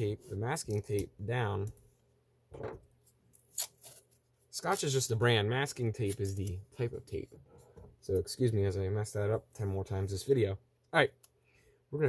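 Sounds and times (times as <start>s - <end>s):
masking tape rustling: 2.8s - 7.4s
tape tearing crackly rasps: 3.3s - 5.0s.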